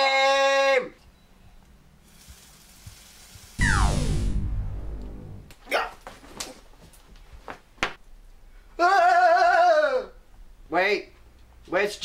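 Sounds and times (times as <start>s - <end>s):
synthesized zap with low rumble: 3.6s - 5.5s.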